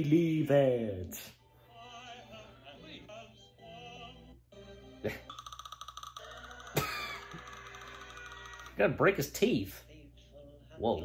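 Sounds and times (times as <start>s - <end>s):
cartoon music: 3.1s - 9.0s.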